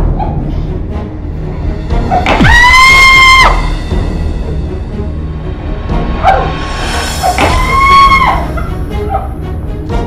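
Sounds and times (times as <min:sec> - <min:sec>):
dramatic film music: 0:00.0 - 0:10.0.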